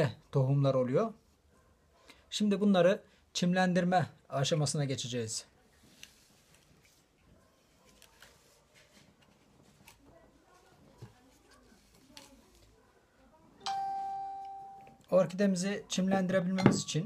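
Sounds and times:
tabletop handling noises: 0:05.7 - 0:12.8
bell-like ringing tone: 0:13.6 - 0:15.0.

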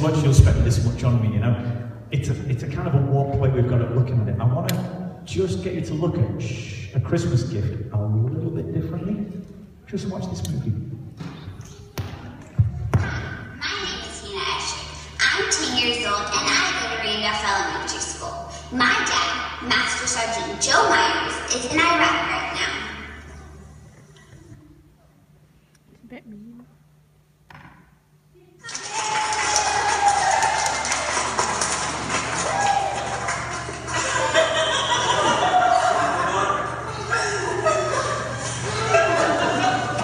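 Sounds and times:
low thumps: 0:00.2 - 0:01.5.

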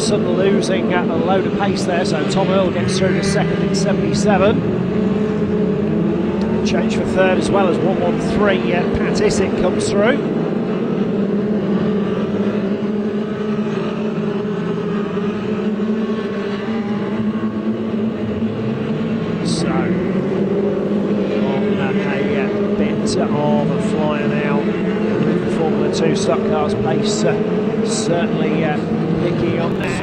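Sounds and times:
racing car engines droning: 0:00.0 - 0:30.0.

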